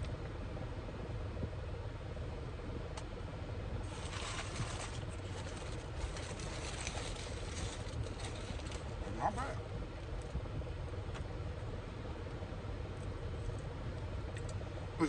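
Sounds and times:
low rumble in car cabin: 0.0s - 15.0s
close-up crackling: 3.8s - 9.2s.

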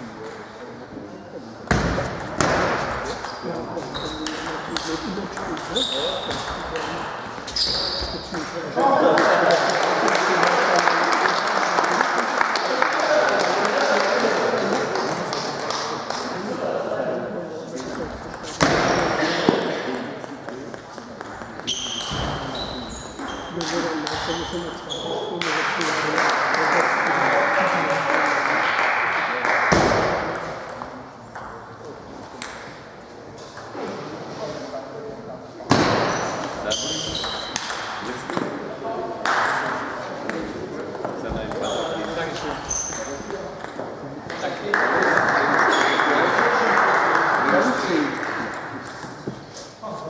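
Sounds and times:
voices in a hall: 0.0s - 50.0s.

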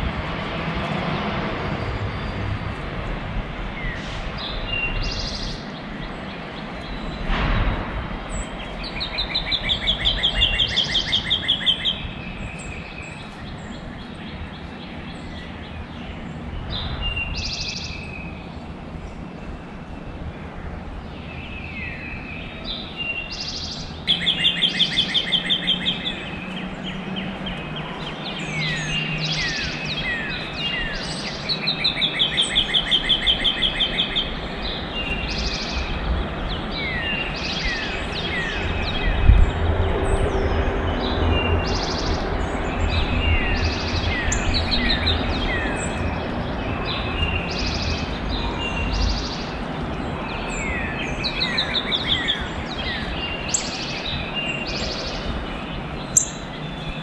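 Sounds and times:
birds whistling and chirping: 3.5s - 7.5s, 8.2s - 20.3s, 21.0s - 57.0s
bird trilling: 8.9s - 12.0s, 23.2s - 26.6s, 28.4s - 34.3s, 56.1s - 56.8s.

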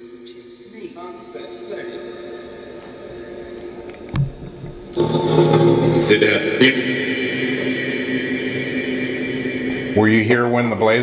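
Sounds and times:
chopped echoing audio fragments: 0.2s - 11.0s
low thump: 4.1s - 4.9s.

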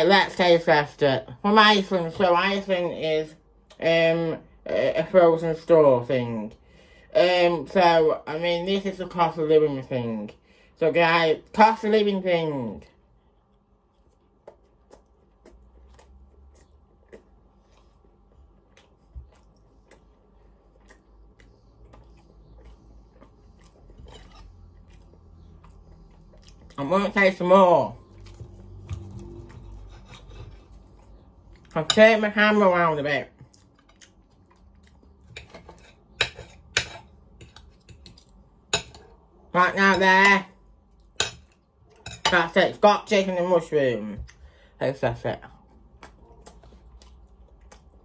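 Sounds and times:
faint chewing: 12.9s - 31.9s, 33.3s - 39.4s, 45.5s - 48.0s.

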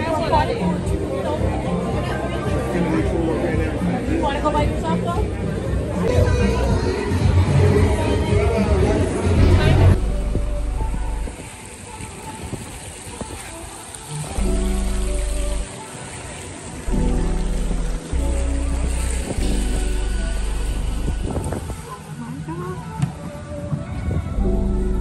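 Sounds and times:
background music: 0.0s - 25.0s
deep bass notes: 0.6s - 11.4s, 14.4s - 15.7s, 16.9s - 21.8s, 24.4s - 25.0s.

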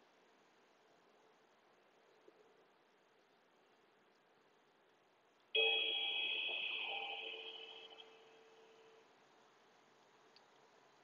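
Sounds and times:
meditation timer chime: 5.6s - 9.1s.

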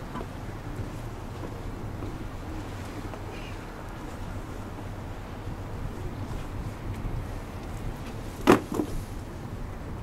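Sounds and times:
low wind rumble: 0.0s - 10.0s.

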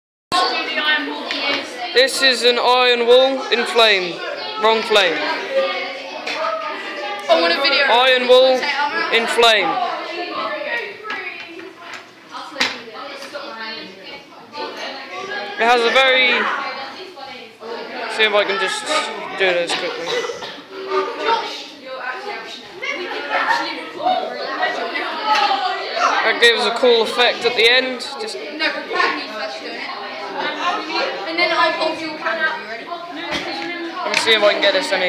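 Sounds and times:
indistinct chatter of voices: 0.3s - 35.0s
people talking: 0.3s - 35.0s.

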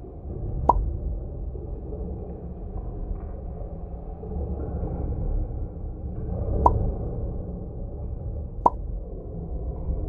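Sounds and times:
low cave rumble: 0.0s - 10.0s.

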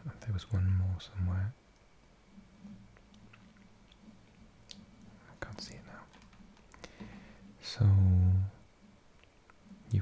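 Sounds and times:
low steady hum: 0.0s - 10.0s
mouth clicks and lip noises: 2.9s - 7.0s
breaths close to microphone: 6.8s - 7.6s.

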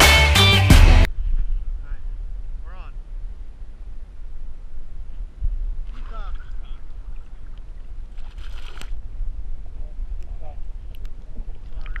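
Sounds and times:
wind rumbling on microphone: 1.1s - 12.0s
fish thrashing and splashing water: 7.0s - 9.0s.

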